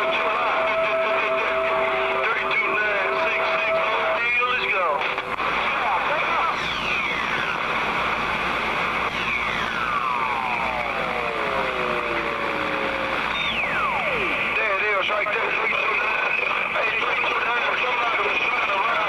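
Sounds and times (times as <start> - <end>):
radio static rush: 0.0 - 19.0
whistling tones gliding down: 9.1 - 14.4.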